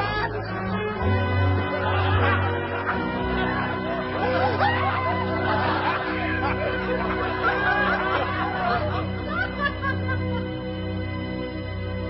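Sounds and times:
man laughing: 0.0s - 10.2s
background music of held notes: 0.0s - 12.0s.

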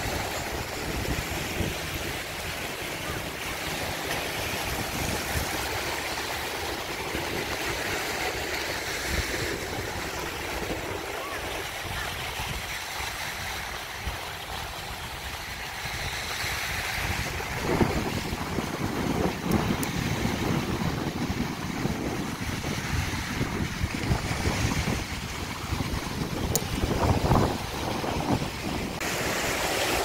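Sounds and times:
wind gusting on microphone: 0.0s - 14.2s, 14.8s - 30.0s
small waves on sandy beach: 0.0s - 30.0s.

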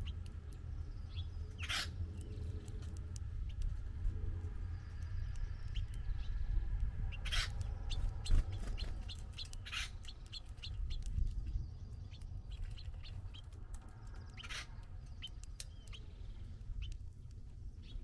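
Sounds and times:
finches chirping: 4.6s - 18.0s.

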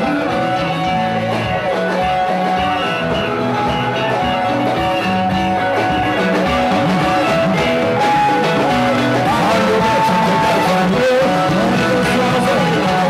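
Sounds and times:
electric guitar music with bass: 0.0s - 13.0s.

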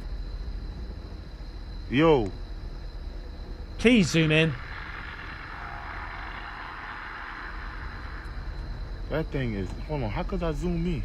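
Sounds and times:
car rumbling: 0.0s - 11.0s.

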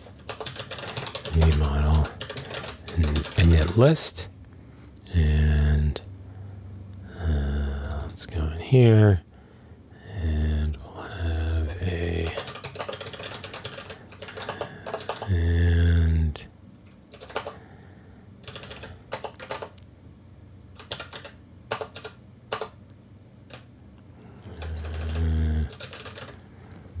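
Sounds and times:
typing on computer keyboard: 0.2s - 3.8s, 7.8s - 8.2s, 12.2s - 15.3s, 17.1s - 17.6s, 18.4s - 19.8s, 20.8s - 22.8s, 23.5s - 23.7s, 24.5s - 26.4s.

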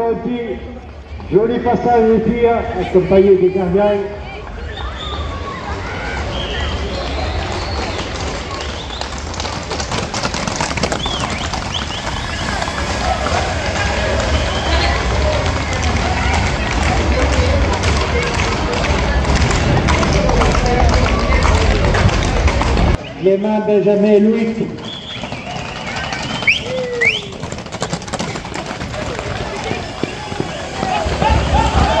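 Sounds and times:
crowd voices and shouts: 0.0s - 32.0s
hooves clattering on asphalt: 4.8s - 23.0s, 23.8s - 32.0s.

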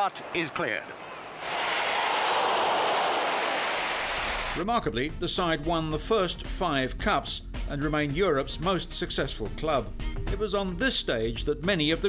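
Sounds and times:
stadium crowd cheering: 0.0s - 4.6s.

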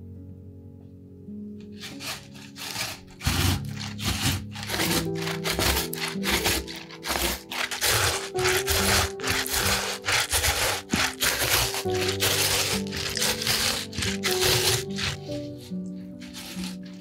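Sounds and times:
soft background music: 0.0s - 17.0s
vegetable grated on metal grater: 1.8s - 17.0s.

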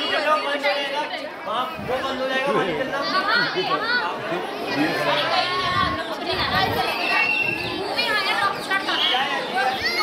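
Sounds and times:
people chatting over one another: 0.0s - 10.0s.

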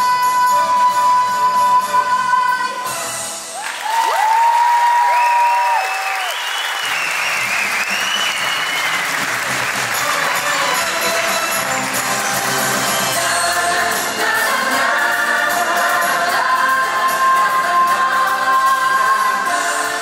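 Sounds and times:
music: 0.0s - 4.9s, 6.8s - 20.0s
audience applauding and cheering: 3.5s - 15.0s
loud whistles: 4.1s - 9.2s.

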